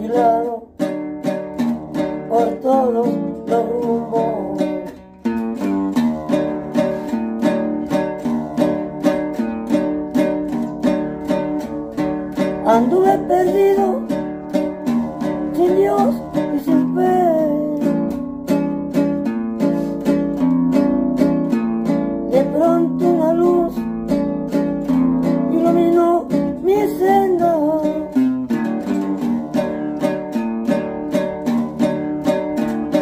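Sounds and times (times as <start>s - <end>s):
old man singing: 0.0s - 0.7s, 2.3s - 4.9s, 12.6s - 14.1s, 15.5s - 18.0s, 22.3s - 23.8s, 25.5s - 28.2s
acoustic guitar strumming: 0.0s - 33.0s.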